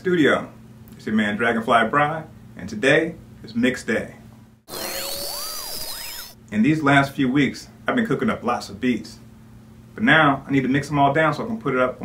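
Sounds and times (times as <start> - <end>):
high rising tone: 4.7 - 6.4
hiss-like electronic burst: 4.7 - 6.4
sweeping electronic tones: 4.7 - 6.4.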